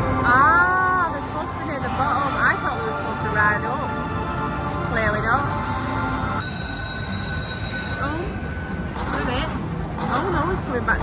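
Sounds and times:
casino background noise: 0.7s - 3.6s, 4.4s - 11.0s
slot machine electronic tones: 0.9s - 2.6s, 4.6s - 11.0s.

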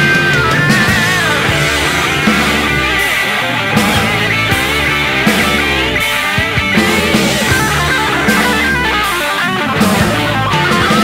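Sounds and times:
hard rock instrumental music: 0.0s - 11.0s.

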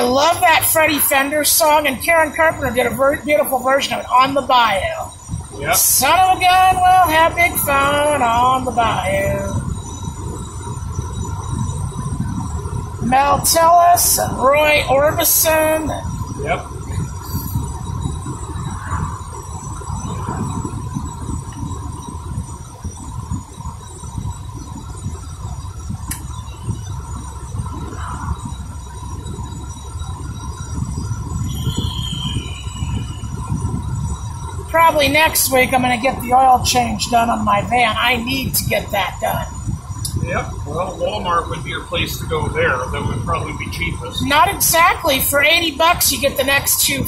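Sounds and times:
car interior road rumble: 0.0s - 47.0s.

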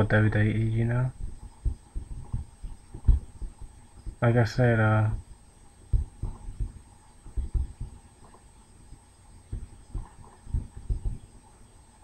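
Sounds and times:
faint high-pitched whine: 0.0s - 12.0s
soft low thumps: 0.0s - 12.0s.

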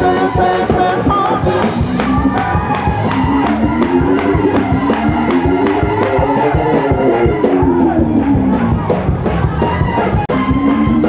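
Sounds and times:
band playing: 0.0s - 11.0s
drum kit beat: 0.0s - 11.0s.

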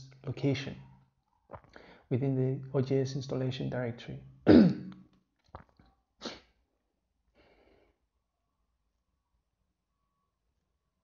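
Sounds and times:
man clearing throat: 4.5s - 5.0s.

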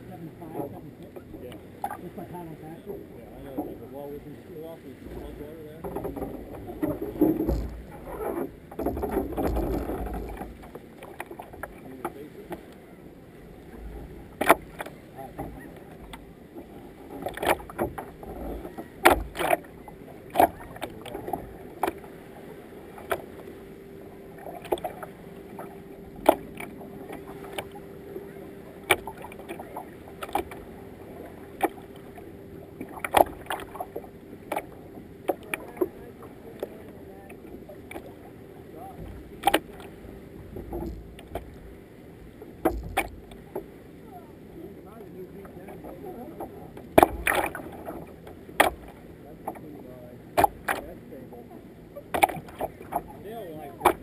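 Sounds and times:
kayak paddle strokes: 0.0s - 51.2s, 51.9s - 54.0s
water washing along hull: 0.0s - 54.0s.

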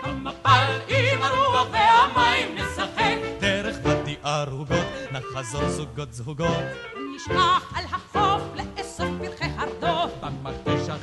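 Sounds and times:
pop song with vibrato singing: 0.0s - 11.0s.

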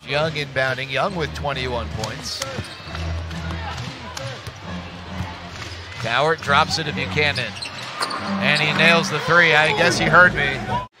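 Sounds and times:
low arena background: 0.0s - 11.0s.

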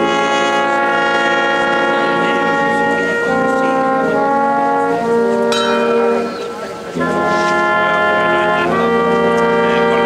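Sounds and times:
brass band playing march: 0.0s - 10.0s.

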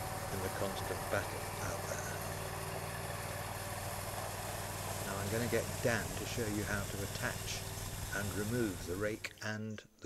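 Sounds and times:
ride-on mower engine running: 0.0s - 9.4s
rake dragging through gravel: 4.8s - 9.2s.

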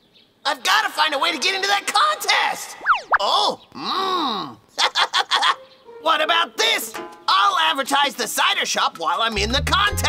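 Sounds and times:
quick sliding tone: 2.8s - 3.2s
cartoon character murmuring and groaning: 3.2s - 4.6s.

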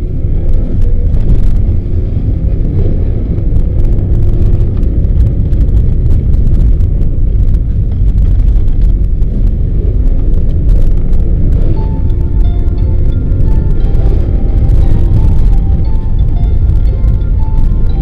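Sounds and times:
car engine rumble from inside: 0.0s - 18.0s.

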